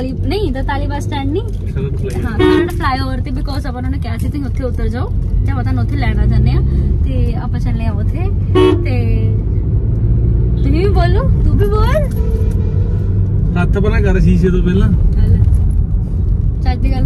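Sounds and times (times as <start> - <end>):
car engine and tyres rumbling: 0.0 - 17.0.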